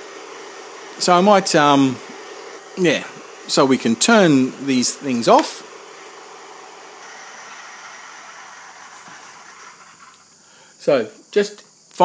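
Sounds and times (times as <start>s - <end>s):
fan-like whirring hiss: 0.0s - 12.0s.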